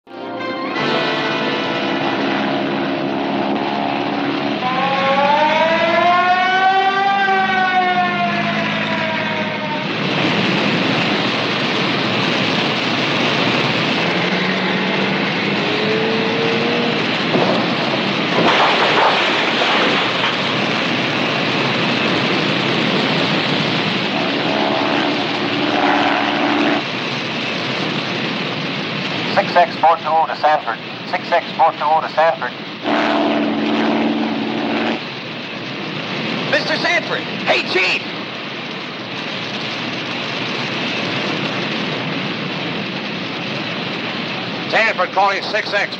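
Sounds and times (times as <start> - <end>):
siren wailing: 0.2 - 12.1, 13.3 - 27.0, 32.8 - 35.2
roar of forest fire: 1.8 - 45.9.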